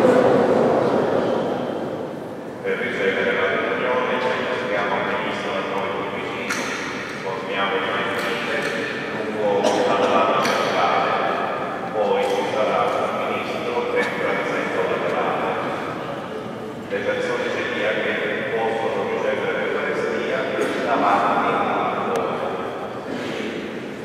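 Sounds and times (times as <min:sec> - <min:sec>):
man reciting prayer with echo: 0:02.6 - 0:24.0.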